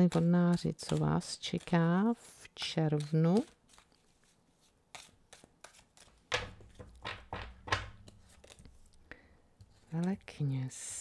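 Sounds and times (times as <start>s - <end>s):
cards shuffling: 0.0s - 2.0s, 2.6s - 9.0s
cards thudding on table: 6.3s - 8.6s.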